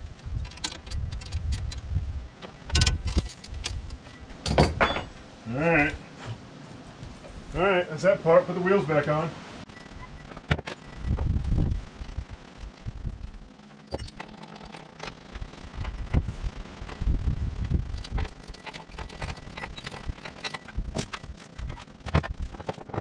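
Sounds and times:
metal and rubber parts clicking: 0.1s - 5.1s, 17.9s - 23.0s.

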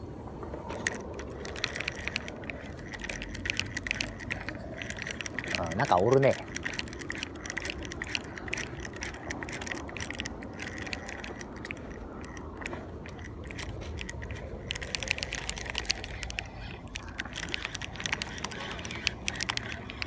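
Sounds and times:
fishing reel clicking: 0.6s - 20.0s.

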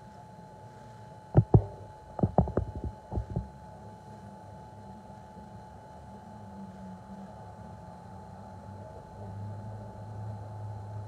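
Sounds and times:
faint hum: 0.0s - 11.0s
dull low thumps: 1.4s - 3.5s.

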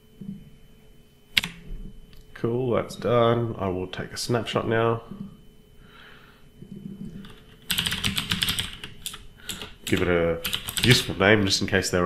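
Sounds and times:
computer keyboard typing: 1.4s - 1.6s, 7.2s - 11.2s.

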